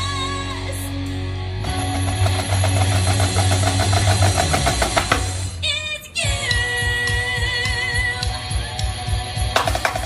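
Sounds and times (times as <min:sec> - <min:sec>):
marching snare drums: 0:02.1 - 0:05.4.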